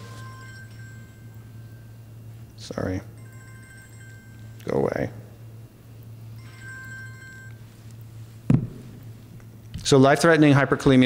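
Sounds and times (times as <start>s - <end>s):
electronic phone tone: 0.0s - 2.3s, 3.2s - 4.6s, 6.3s - 7.8s
low electrical hum: 0.0s - 11.0s.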